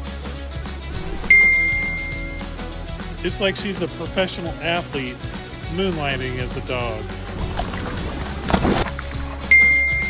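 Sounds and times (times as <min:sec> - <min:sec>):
background music: 0:00.0 - 0:10.0
bright bell-like ding: 0:01.3 - 0:02.5, 0:09.5 - 0:10.0.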